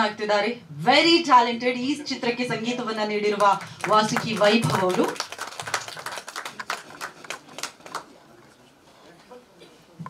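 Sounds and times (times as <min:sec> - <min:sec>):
sparse hand clapping: 0:03.8 - 0:08.1.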